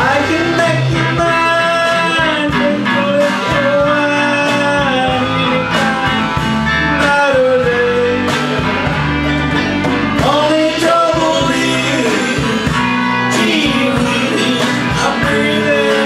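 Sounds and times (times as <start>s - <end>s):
person singing: 0.0s - 9.2s, 9.9s - 16.0s
drum kit beat: 0.0s - 16.0s
electric guitar: 0.0s - 16.0s
pedal steel guitar: 0.0s - 16.0s.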